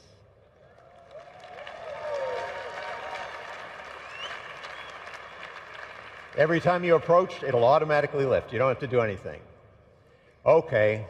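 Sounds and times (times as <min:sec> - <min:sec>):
audience applauding: 0:00.7 - 0:07.0.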